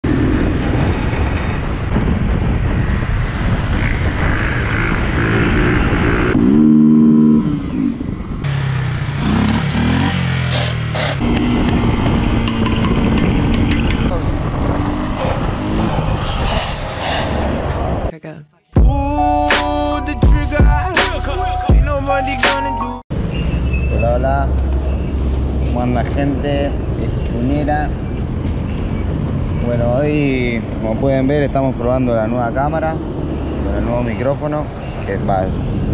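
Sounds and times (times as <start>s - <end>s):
steady rushing noise: 0.0s - 6.6s
motorcycle engines revving: 2.6s - 16.8s.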